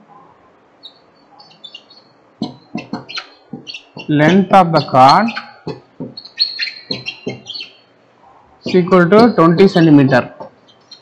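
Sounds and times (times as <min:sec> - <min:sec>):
bird chirping: 0:00.7 - 0:11.0.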